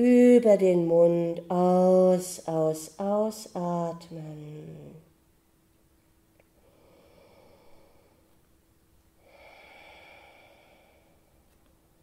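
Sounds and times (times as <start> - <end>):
faint steady hum: 0.0 - 12.0
person breathing out: 6.6 - 8.3, 9.2 - 11.4.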